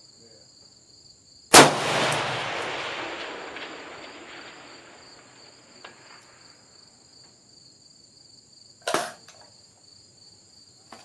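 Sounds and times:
insects chirping: 0.0s - 11.0s
rifle shot echo: 1.5s - 6.8s
distant steel target ping: 1.6s - 6.3s.

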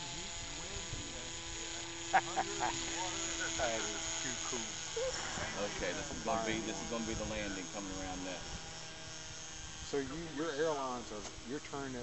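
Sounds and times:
motor and propeller hum: 0.0s - 12.0s
thin high whine: 1.8s - 10.6s.

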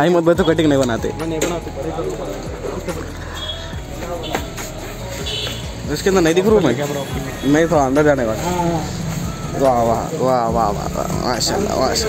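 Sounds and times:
people talking loudly: 0.0s - 12.0s.

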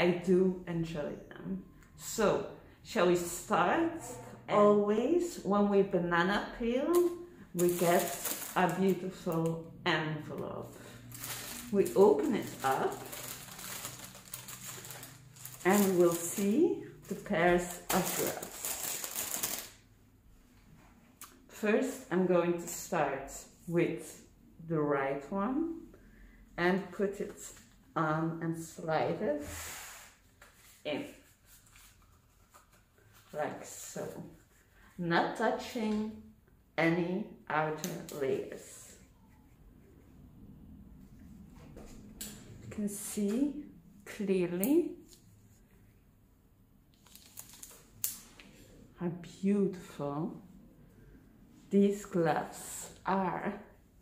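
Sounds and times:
glove wrapper rustling and crackling: 6.9s - 9.3s, 10.8s - 19.8s, 46.9s - 48.5s.

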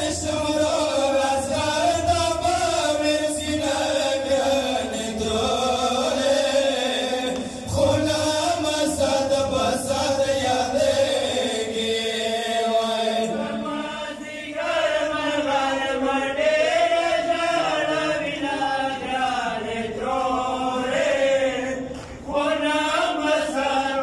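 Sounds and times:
men chanting a lament: 0.0s - 24.0s.

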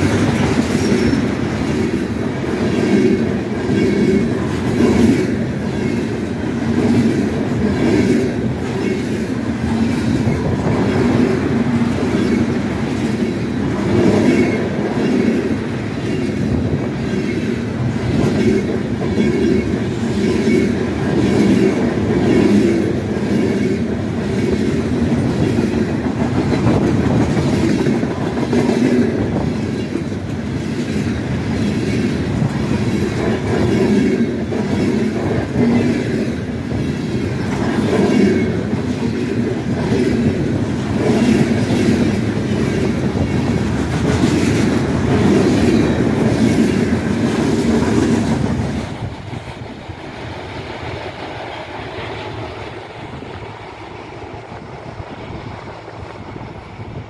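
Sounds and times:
train wheels rumbling on rail: 0.0s - 57.0s.

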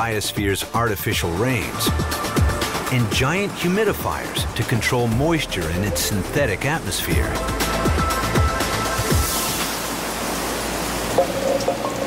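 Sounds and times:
steady rushing hiss: 1.4s - 12.0s.

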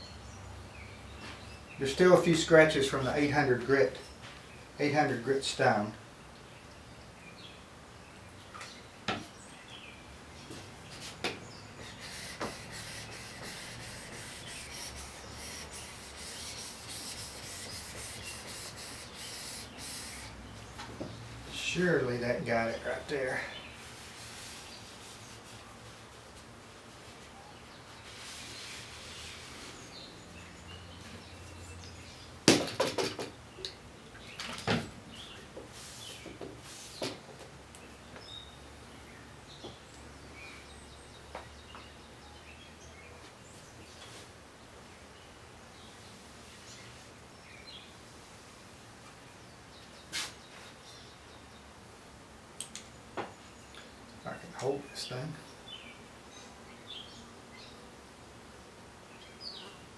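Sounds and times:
knocks and clicks of handled tools: 32.5s - 33.8s.

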